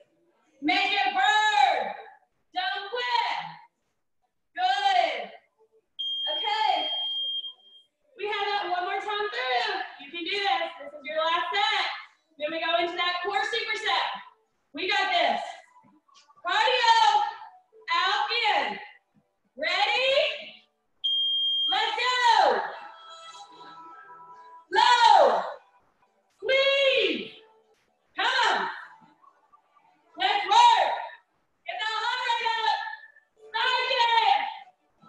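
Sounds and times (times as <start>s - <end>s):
timer beep: 6.0s - 7.8s
woman's voice: 8.2s - 14.2s, 14.8s - 15.6s.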